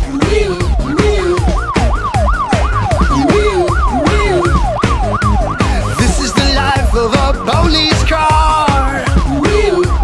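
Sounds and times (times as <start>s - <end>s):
upbeat children's song instrumental: 0.0s - 10.0s
cartoon police siren: 0.2s - 10.0s.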